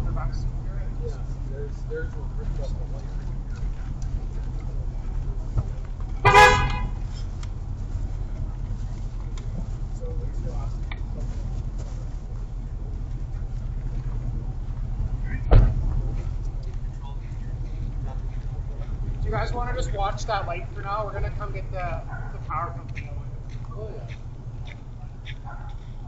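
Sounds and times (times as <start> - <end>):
steady low hum: 0.0 - 26.0
car horn honk: 6.2 - 7.1
sharp thump: 15.5 - 16.0.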